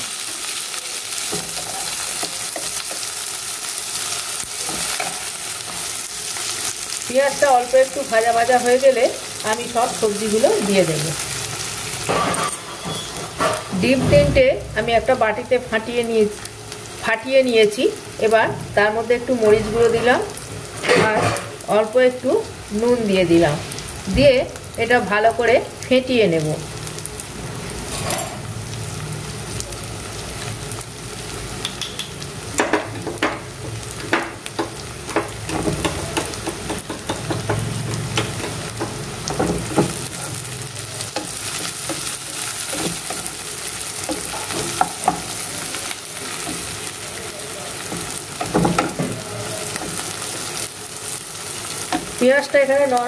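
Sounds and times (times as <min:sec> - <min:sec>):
onions sizzling in oil: 0:00.0 - 0:53.0.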